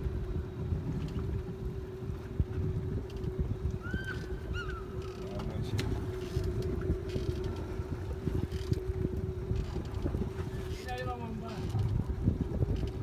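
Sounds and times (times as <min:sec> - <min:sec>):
boat engine humming: 0:00.0 - 0:13.0
wind buffeting microphone: 0:00.0 - 0:13.0.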